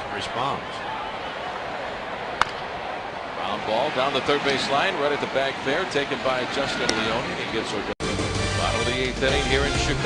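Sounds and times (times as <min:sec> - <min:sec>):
baseball bat hitting ball: 0:02.4 - 0:02.8.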